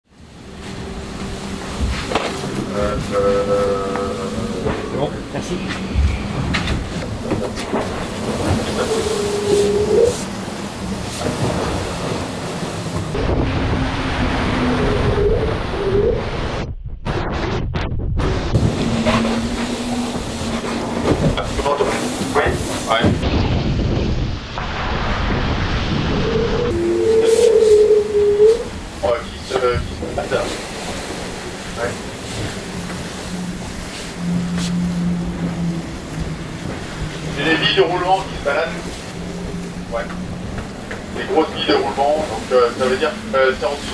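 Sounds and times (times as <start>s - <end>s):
rushing water: 0.0s - 16.6s, 18.5s - 43.9s
hull rumble: 0.0s - 43.9s
wind: 0.0s - 43.9s
knocks and rattles in cabin: 4.6s - 8.8s, 18.3s - 23.3s.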